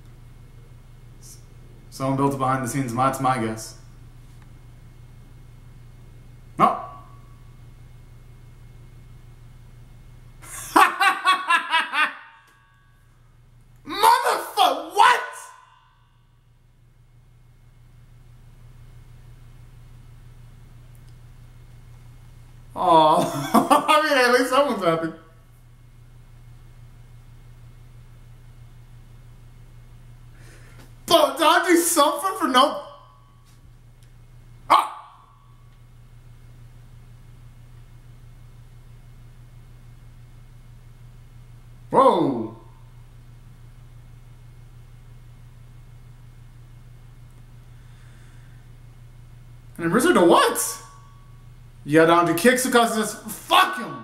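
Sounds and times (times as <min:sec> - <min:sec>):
faint steady hum: 0:00.0 - 0:54.0
man yelping: 0:06.6 - 0:07.1, 0:10.7 - 0:12.2, 0:13.9 - 0:15.7, 0:31.1 - 0:33.1, 0:34.7 - 0:35.2, 0:52.2 - 0:54.0.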